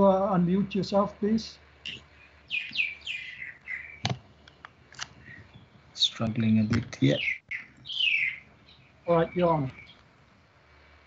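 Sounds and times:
bird chirping: 0:00.5 - 0:10.2.

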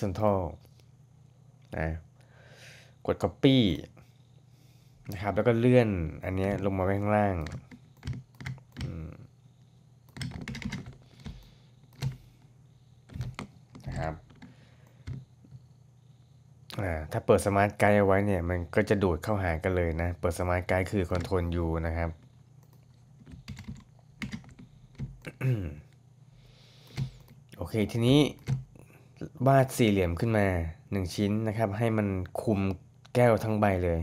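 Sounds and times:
keyboard and mouse clicks: 0:06.4 - 0:09.0, 0:10.1 - 0:12.4, 0:13.0 - 0:15.6, 0:21.0 - 0:21.4, 0:26.9 - 0:27.4, 0:28.4 - 0:28.7.

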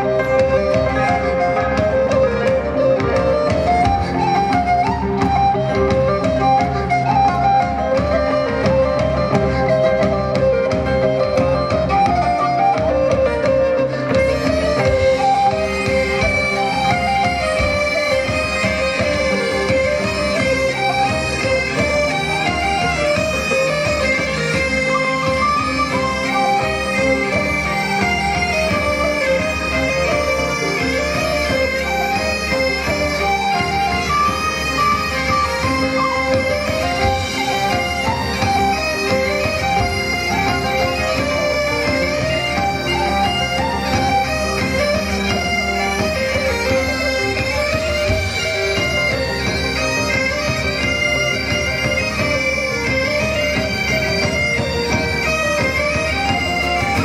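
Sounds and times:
bagpipe-like folk melody over drone: 0:00.0 - 0:57.0.

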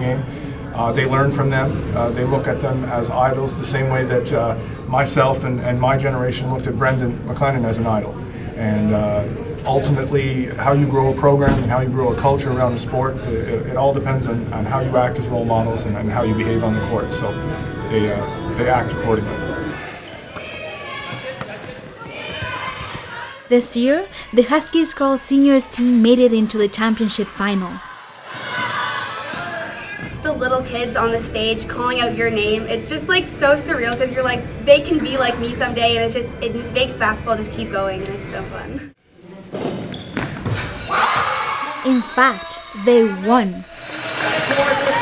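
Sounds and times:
indistinct voices: 0:14.4 - 0:30.6.

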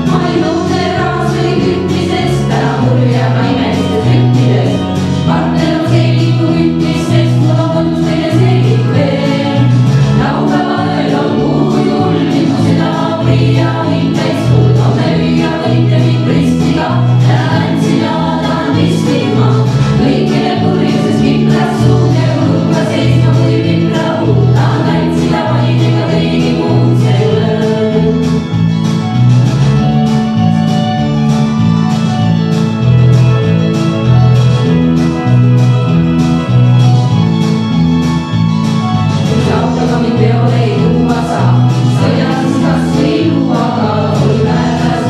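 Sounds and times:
female vocal ensemble singing: 0:00.0 - 0:28.4, 0:39.3 - 0:45.0
low rhythmic accompaniment: 0:00.0 - 0:45.0.

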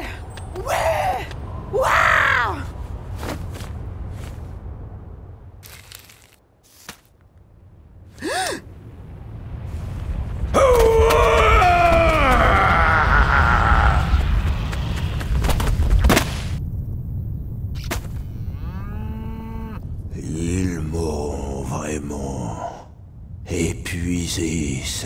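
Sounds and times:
continuous low rumble: 0:00.0 - 0:25.0.

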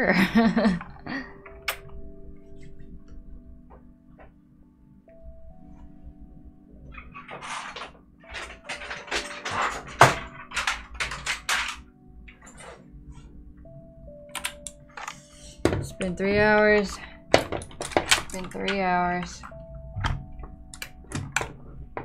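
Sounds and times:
soft background music: 0:00.0 - 0:22.0
plastic keyboards clattering: 0:06.9 - 0:12.7, 0:14.3 - 0:22.0.

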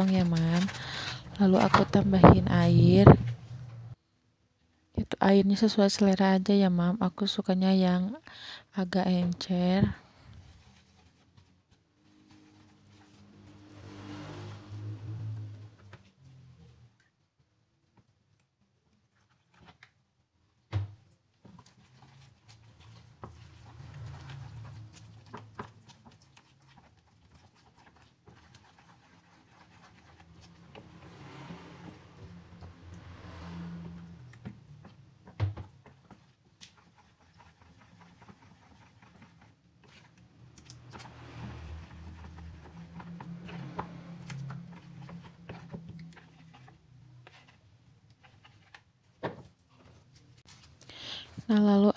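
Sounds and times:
spatula stirring batter in plastic bowl: 0:00.0 - 0:03.0, 0:21.0 - 0:33.0, 0:33.6 - 0:50.8.

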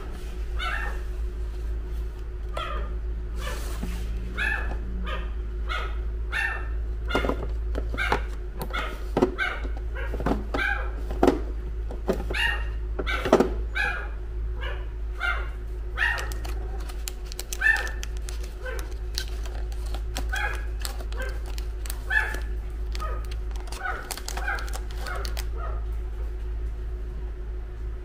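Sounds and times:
dog barking in high yips: 0:00.6 - 0:01.1, 0:02.5 - 0:03.6, 0:04.4 - 0:11.0, 0:12.3 - 0:16.8, 0:17.5 - 0:18.0, 0:18.6 - 0:19.0, 0:20.3 - 0:21.5, 0:22.1 - 0:25.9.

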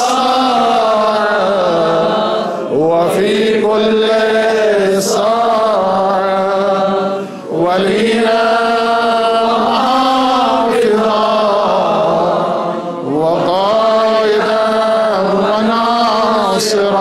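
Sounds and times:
male voices chanting in unison: 0:00.0 - 0:17.0.

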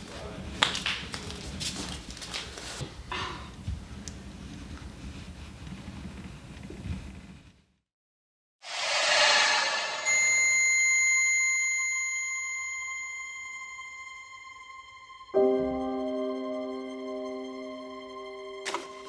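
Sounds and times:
whoosh: 0:08.6 - 0:10.5
high-pitched ringing tone: 0:08.8 - 0:15.4.

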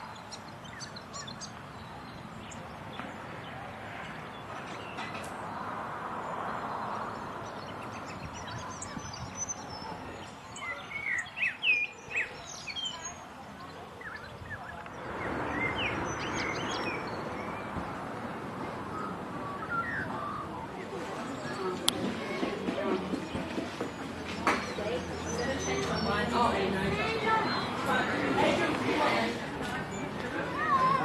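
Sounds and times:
small birds chirping: 0:00.0 - 0:18.2, 0:18.9 - 0:28.4
outdoor background noise: 0:00.0 - 0:31.0.

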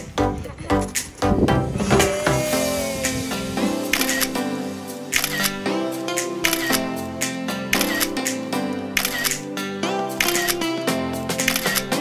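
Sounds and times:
bass and chords: 0:00.0 - 0:12.0.

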